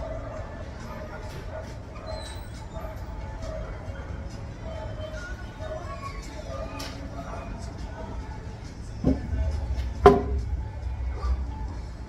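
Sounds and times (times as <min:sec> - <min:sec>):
steady low rumble: 0:07.7 - 0:12.0.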